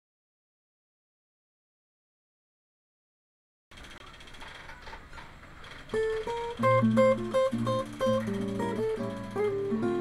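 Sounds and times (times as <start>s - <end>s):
microphone hiss: 3.9s - 10.0s
plucked guitar note: 6.0s - 10.0s.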